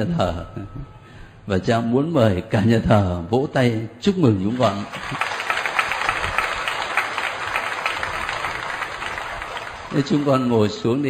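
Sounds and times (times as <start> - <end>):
congregation applauding: 4.5 - 11.0.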